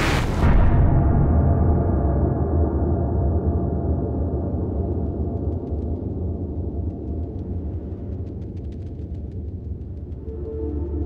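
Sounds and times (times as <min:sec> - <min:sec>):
deep rumbling drone: 0:00.0 - 0:11.0
low gong-like boom: 0:00.4 - 0:04.2
faint scattered crackles: 0:04.8 - 0:11.0.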